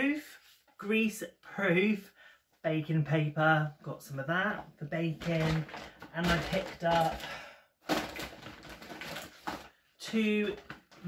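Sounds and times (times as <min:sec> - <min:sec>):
plastic bag rustling: 0:05.1 - 0:11.0
cardboard boxes rustling: 0:05.2 - 0:09.8.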